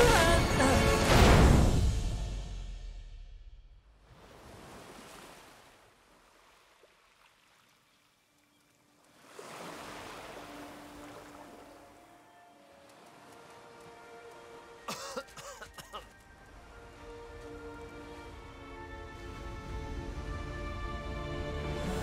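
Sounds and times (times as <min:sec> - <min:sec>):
soft surf on sandy beach: 0:04.1 - 0:07.9, 0:09.0 - 0:14.8
faint sustained music tones: 0:08.1 - 0:22.0
cough-like vocal sounds: 0:14.9 - 0:16.1.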